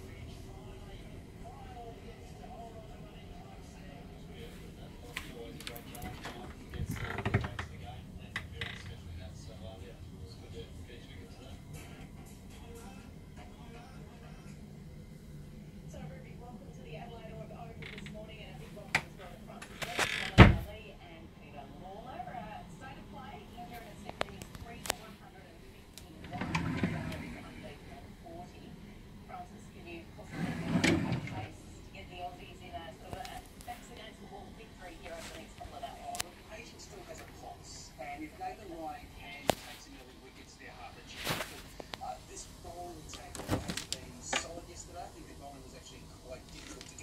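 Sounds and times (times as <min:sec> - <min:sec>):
faint voices: 0:00.0 - 0:47.0
wooden drawer sliding open: 0:26.2 - 0:27.4, 0:30.3 - 0:31.5
rustling: 0:41.1 - 0:42.0.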